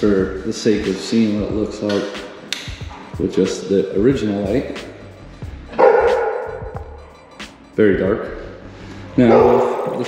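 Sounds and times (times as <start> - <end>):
dog barking loudly: 5.7 - 6.6, 9.3 - 9.8.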